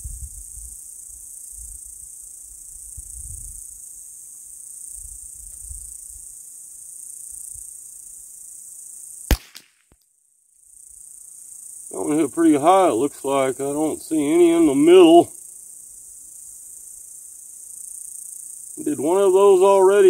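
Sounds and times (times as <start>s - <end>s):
insects droning: 0.0s - 9.7s, 10.4s - 20.0s
rifle shot: 9.3s - 9.8s.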